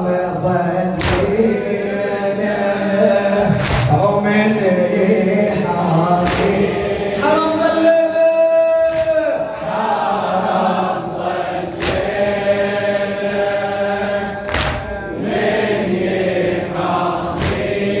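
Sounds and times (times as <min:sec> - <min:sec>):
men chanting in unison: 0:00.0 - 0:18.0
chest slaps: 0:06.2 - 0:06.6, 0:08.9 - 0:09.2, 0:14.4 - 0:15.0, 0:17.4 - 0:17.7.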